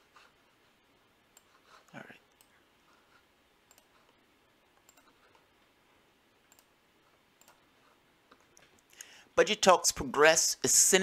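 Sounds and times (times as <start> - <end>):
computer mouse clicks: 1.3 - 2.6, 3.6 - 5.5, 6.5 - 6.8, 7.4 - 9.1.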